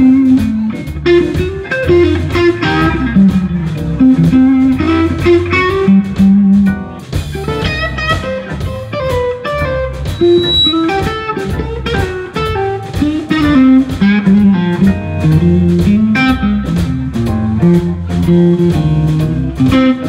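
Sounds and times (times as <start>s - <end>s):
blues band playing: 0.0s - 20.0s
electric guitar: 0.0s - 20.0s.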